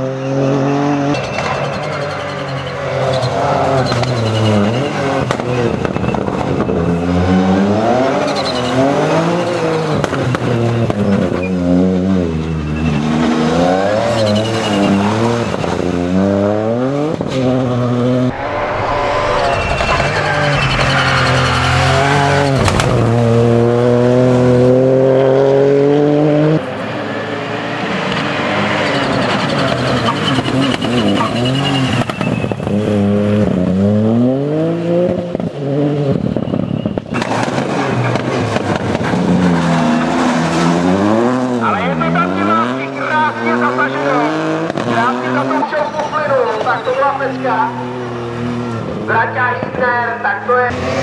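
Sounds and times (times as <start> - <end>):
rally car engine revving: 0.0 - 51.0.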